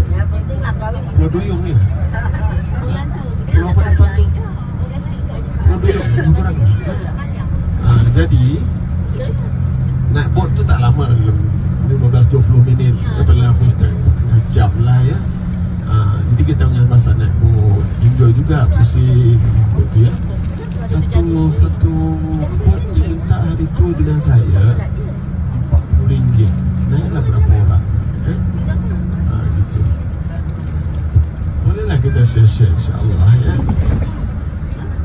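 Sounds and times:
bus engine rumble: 0.0 - 35.0
road noise: 0.0 - 35.0.

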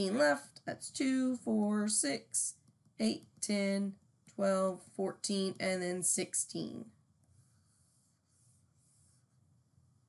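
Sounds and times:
low room hum: 0.0 - 10.0
stylus scratching on a tablet: 2.0 - 4.5, 7.2 - 9.6.

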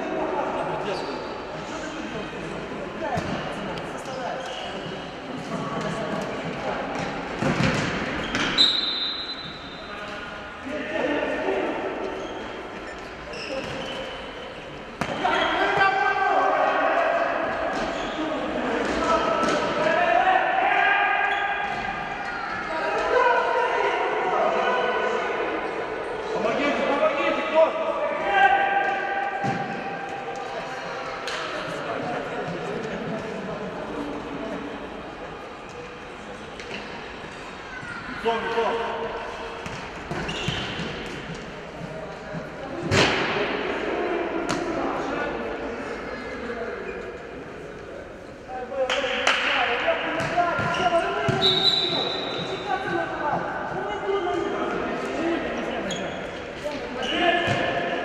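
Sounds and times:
ball bouncing on hard court: 3.1 - 3.5, 6.9 - 8.6, 39.6 - 41.2, 50.2 - 51.5.

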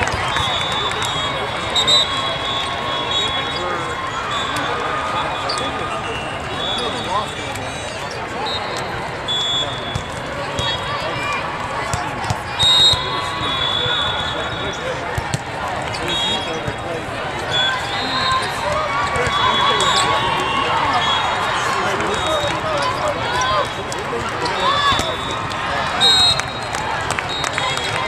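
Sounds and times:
echoing babble of voices: 0.0 - 28.0
sneaker squeaks: 5.3 - 11.1, 12.2 - 16.8, 24.4 - 28.0.

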